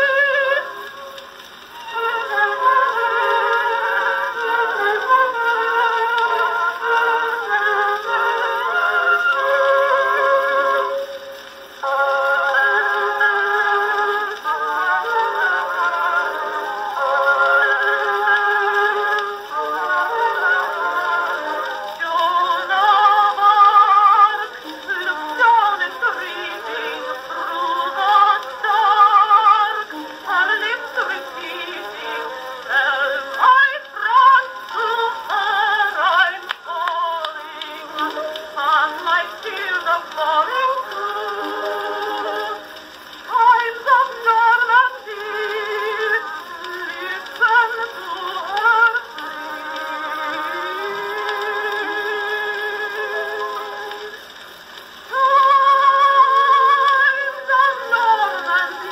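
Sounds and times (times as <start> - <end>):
thin phonograph music: 0.0 - 58.9
woman singing with vibrato: 0.0 - 58.9.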